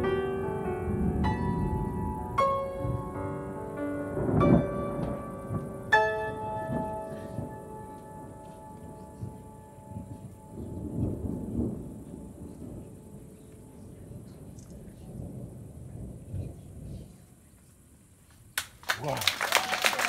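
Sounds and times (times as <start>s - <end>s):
grand piano chords: 0.0s - 16.2s
distant thunder rumbling: 0.0s - 18.2s.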